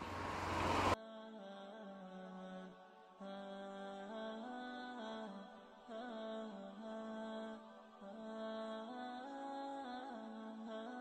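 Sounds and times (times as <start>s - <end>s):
low drone: 0.0s - 1.0s
slow chant-like melody: 0.0s - 11.0s.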